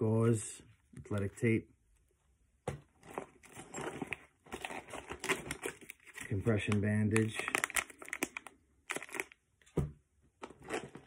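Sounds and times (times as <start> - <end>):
plastic packages crinkling: 3.0 - 9.4.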